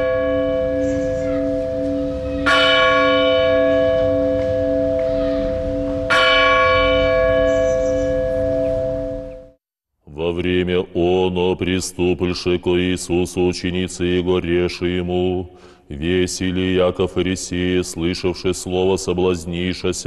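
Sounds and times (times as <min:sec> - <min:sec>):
large church bell ringing: 0:00.0 - 0:09.6.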